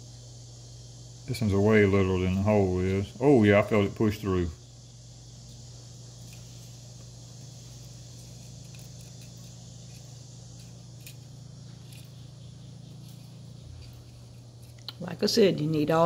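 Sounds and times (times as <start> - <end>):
high hiss: 0.0 - 16.0.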